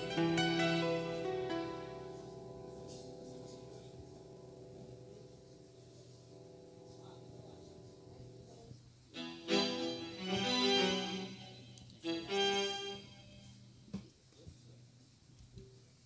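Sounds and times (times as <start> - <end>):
electronic keyboard melody notes: 0.0 - 8.4, 9.2 - 13.6.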